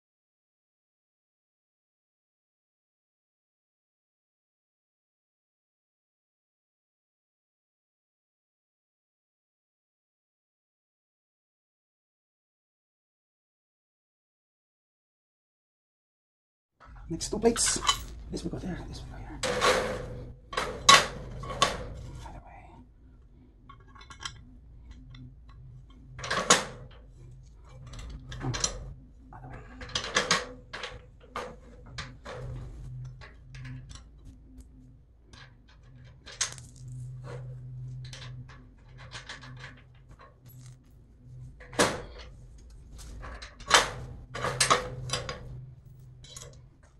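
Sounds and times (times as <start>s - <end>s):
metal plates and bolts clinking: 17.0s - 22.2s, 41.6s - 46.6s.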